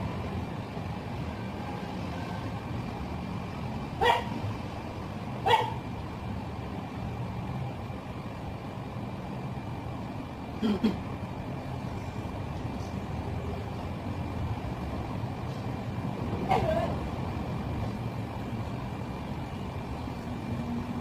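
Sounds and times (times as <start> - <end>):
dog barking: 4.0 - 4.4, 5.4 - 5.8.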